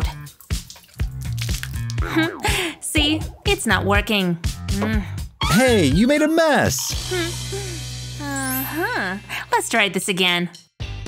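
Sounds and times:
cola dripping from bottle: 0:00.0 - 0:03.4
background music: 0:00.0 - 0:11.0.

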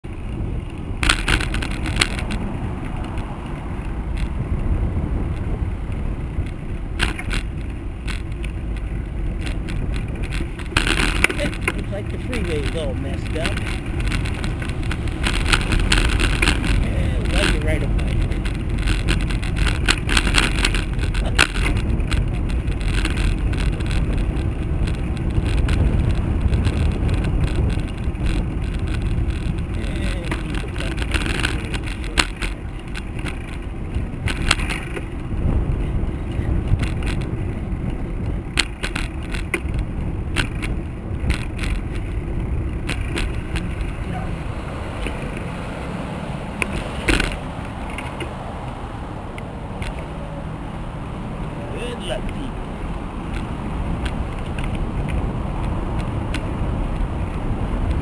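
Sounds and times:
bicycle rolling on road: 0:00.0 - 0:58.0
bike rattling over bumps: 0:00.0 - 0:58.0
cars in slow traffic: 0:00.0 - 0:58.0
wind on microphone: 0:00.0 - 0:58.0.

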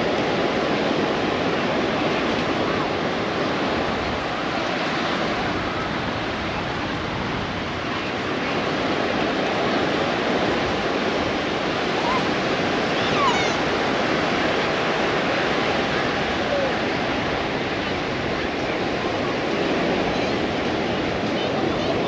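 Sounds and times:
surf breaking on beach: 0:00.0 - 0:22.0.

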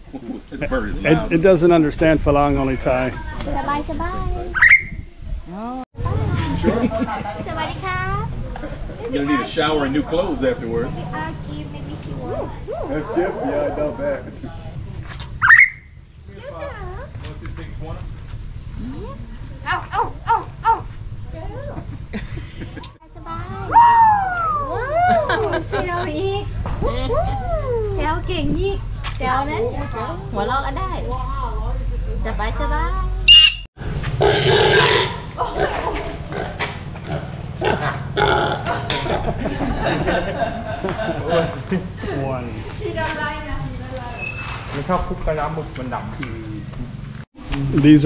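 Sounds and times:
myna bird calling: 0:04.6 - 0:05.0, 0:15.4 - 0:16.7, 0:33.3 - 0:33.7, 0:44.1 - 0:44.6
pig grunting: 0:34.2 - 0:39.4.

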